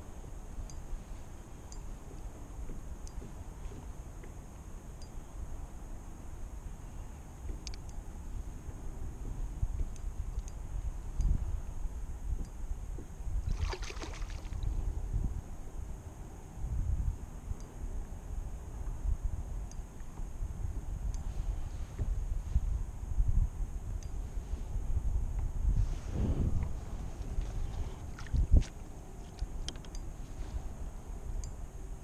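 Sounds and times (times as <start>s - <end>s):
wind buffeting microphone: 7.4s - 16.0s, 16.6s - 32.0s
water lapping against hull: 13.5s - 14.8s, 27.3s - 29.4s.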